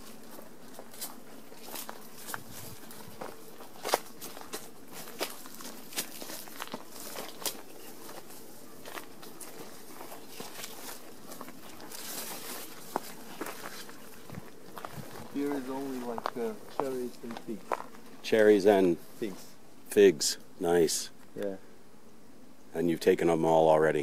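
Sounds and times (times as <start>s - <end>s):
footsteps through long grass: 0.0s - 19.6s.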